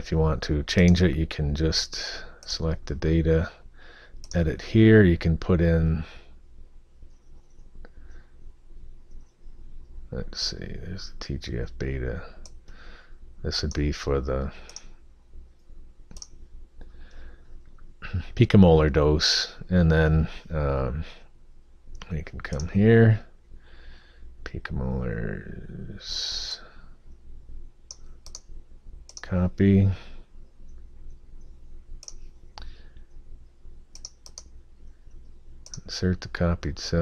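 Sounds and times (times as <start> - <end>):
faint low hum: 0.0 - 37.0
computer mouse clicks: 4.2 - 4.4, 12.4 - 12.8, 14.7 - 14.9, 15.6 - 16.4, 27.9 - 28.5, 29.1 - 29.3, 30.6 - 33.1, 33.9 - 34.6, 35.2 - 35.9.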